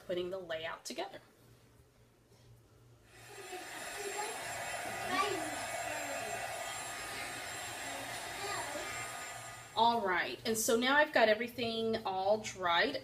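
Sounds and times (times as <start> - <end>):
heat gun blowing hot air: 3.2 - 9.8.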